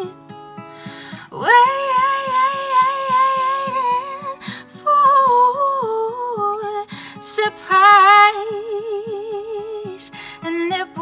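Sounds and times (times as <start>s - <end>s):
fingerpicked acoustic guitar: 0.0s - 11.0s
woman singing: 1.1s - 11.0s.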